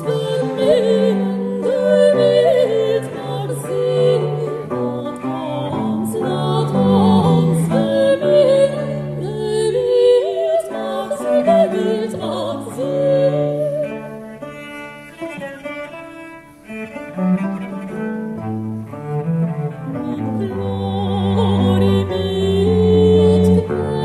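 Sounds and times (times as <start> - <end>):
bowed strings over bass notes: 0.0 - 10.1, 11.1 - 24.0.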